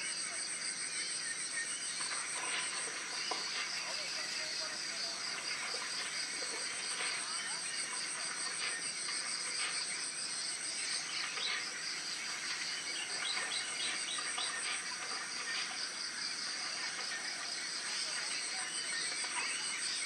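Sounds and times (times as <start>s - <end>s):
insects trilling: 0.0s - 20.0s.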